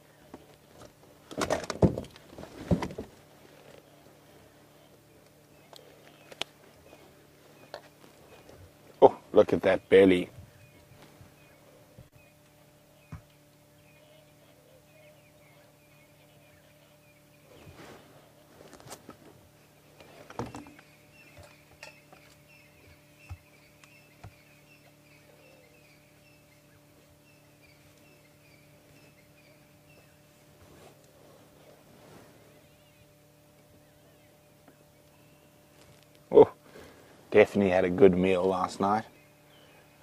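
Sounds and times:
faint low hum: 0.0s - 40.0s.

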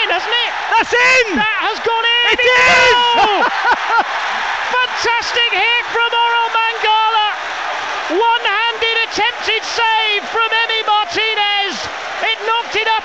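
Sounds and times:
excited commentator's voice: 0.0s - 4.0s, 4.6s - 13.0s
stadium crowd cheering: 0.0s - 13.0s.

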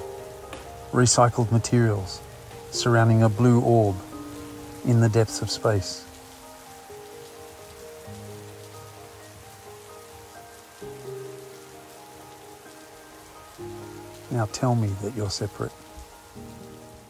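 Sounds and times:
soft music chords: 0.0s - 17.0s
steady rain falling: 0.0s - 17.0s.

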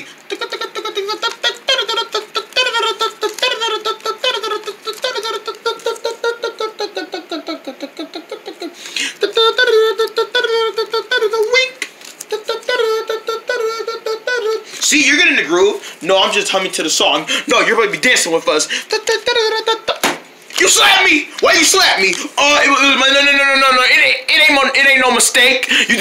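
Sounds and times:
high-pitched voice singing: 0.0s - 8.6s, 9.2s - 14.8s, 18.9s - 20.0s.

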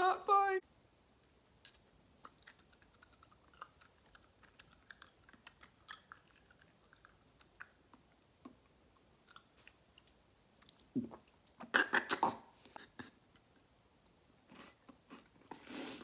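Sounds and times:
person chewing cereal: 1.2s - 10.9s.

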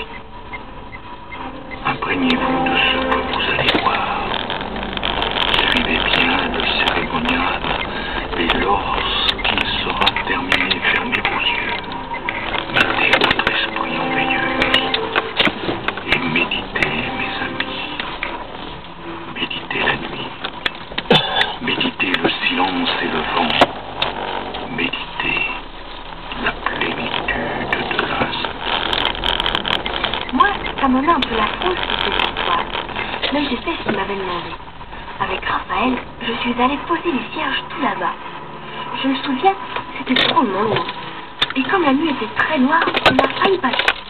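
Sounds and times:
indistinct voices talking: 0.0s - 44.0s
moving vehicle running noise: 0.0s - 44.0s.

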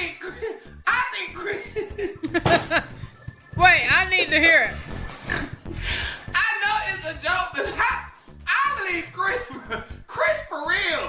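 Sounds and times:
background music: 0.0s - 11.0s
man laughing hard: 1.4s - 3.4s.

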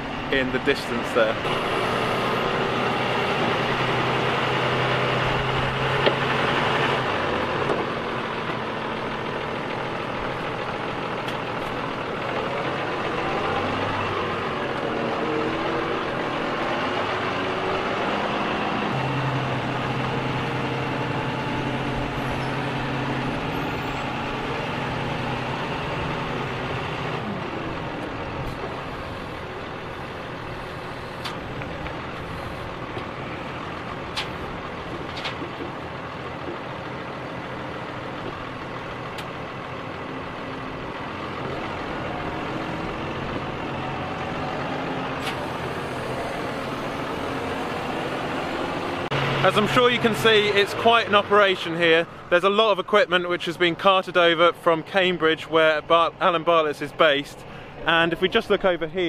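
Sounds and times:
machinery noise: 0.0s - 59.0s
tractor engine running: 0.0s - 59.0s.

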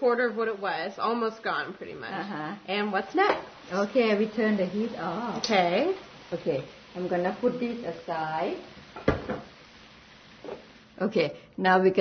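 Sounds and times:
cookware set down on wood: 9.0s - 9.5s.

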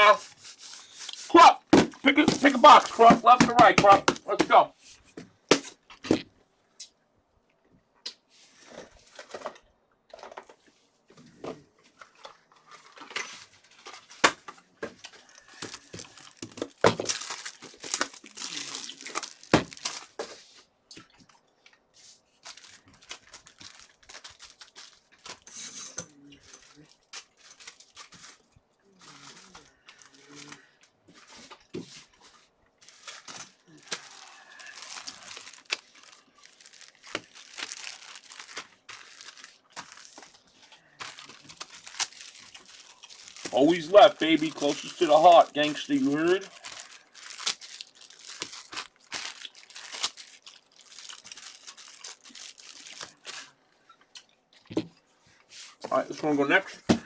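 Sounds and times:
cardboard and wrapper tearing: 15.0s - 20.3s, 22.4s - 25.6s, 32.8s - 53.6s.

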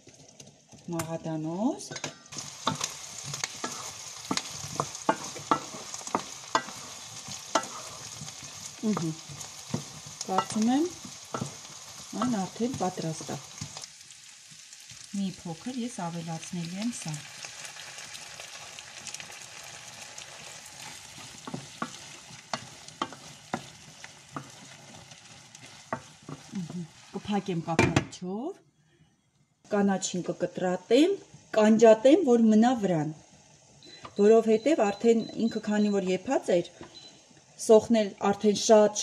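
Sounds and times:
meat and onions sizzling in pan: 0.0s - 27.8s, 29.7s - 39.0s
wooden spatula scraping pan: 2.3s - 13.8s, 20.3s - 27.7s.

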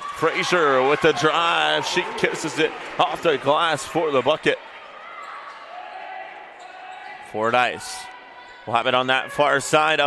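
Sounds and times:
murmur of crowd voices: 0.0s - 10.0s.

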